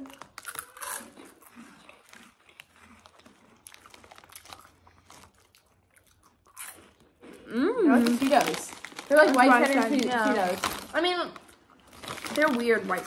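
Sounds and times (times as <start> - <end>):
crunchy snack chewing: 0.0 - 13.0.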